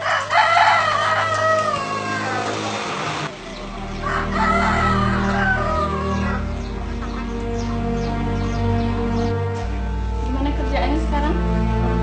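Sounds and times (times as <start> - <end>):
rooster crowing: 0.0 - 2.9, 3.7 - 6.8.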